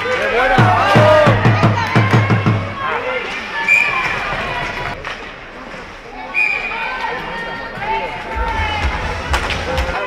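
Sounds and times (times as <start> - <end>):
low rumble: 8.3 - 10.0.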